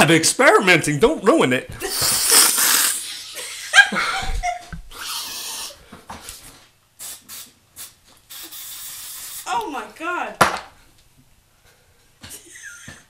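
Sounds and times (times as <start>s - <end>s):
man sniffing hard: 1.8s - 3.4s, 4.9s - 5.8s, 7.0s - 9.4s
man laughing: 1.8s - 4.8s, 12.2s - 13.0s
short hiss: 1.9s - 3.1s, 7.0s - 9.5s.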